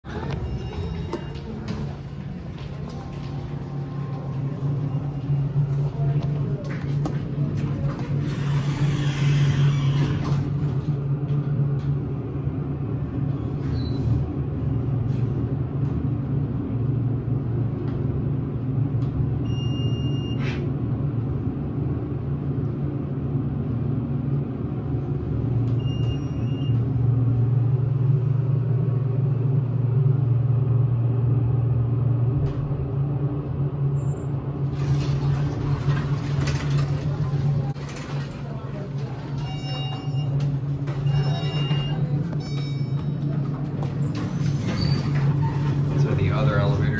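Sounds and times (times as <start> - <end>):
elevator low hum: 0.0 - 46.9.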